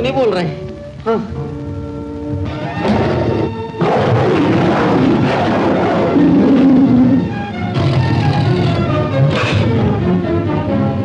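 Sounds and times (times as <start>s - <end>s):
dramatic film score: 0.0s - 11.0s
tiger roar: 2.5s - 9.8s.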